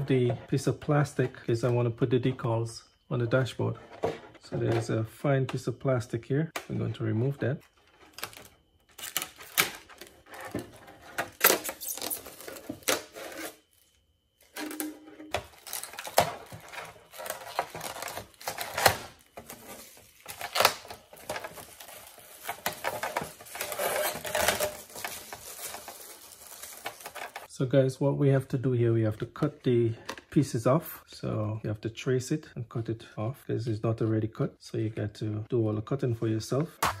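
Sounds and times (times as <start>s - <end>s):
plastic film crinkling: 8.0s - 10.4s, 11.2s - 27.5s.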